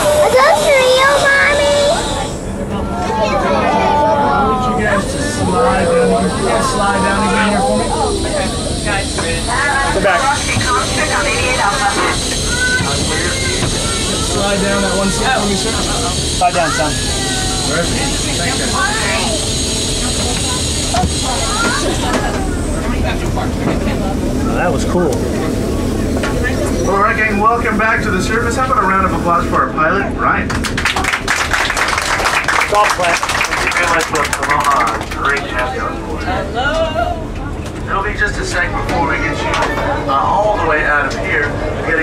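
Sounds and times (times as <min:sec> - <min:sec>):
people talking: 0:00.0 - 0:30.6, 0:31.4 - 0:42.0
faint passengers' voices: 0:00.0 - 0:42.0
steady low hum: 0:00.0 - 0:42.0.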